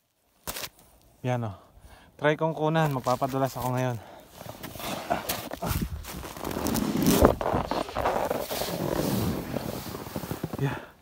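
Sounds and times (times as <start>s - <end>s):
snowboard scraping over snow: 4.7s - 10.9s.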